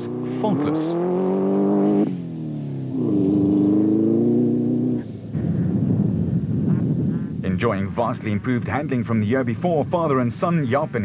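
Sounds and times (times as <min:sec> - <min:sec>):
racing truck engine revving high: 0:00.0 - 0:05.0
low rough engine rumble: 0:04.6 - 0:11.0.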